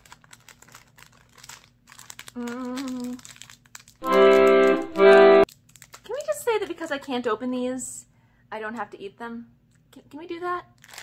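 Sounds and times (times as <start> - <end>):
plastic packaging crinkling: 0.0 - 4.8, 5.4 - 7.2, 10.8 - 11.0
short held tone: 4.0 - 5.4.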